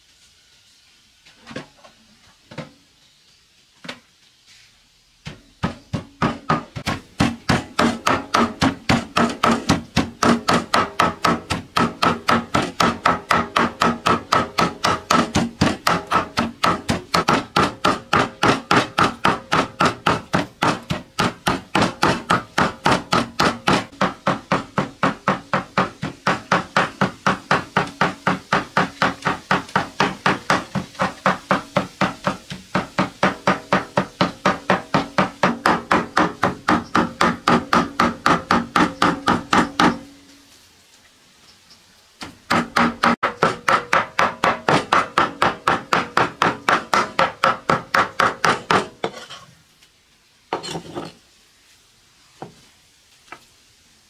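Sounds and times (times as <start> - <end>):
cleaver chopping on wooden block: 5.3 - 40.0, 42.5 - 49.0.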